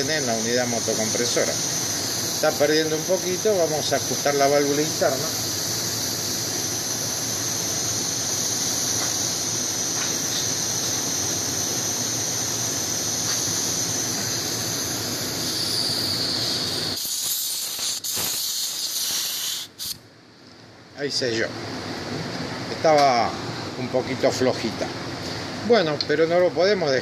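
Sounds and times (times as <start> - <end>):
gas hissing from valve: 0.0 - 20.0.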